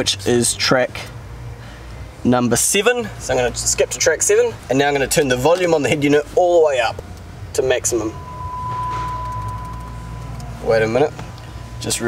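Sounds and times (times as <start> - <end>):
steady test tone: 7.6 - 12.0.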